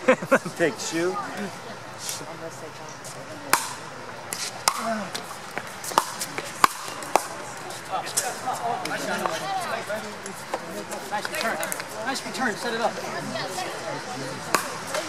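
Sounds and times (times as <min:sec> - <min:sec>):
spectators talking: 0:00.0 - 0:15.0
paddles hitting plastic ball: 0:03.5 - 0:07.4.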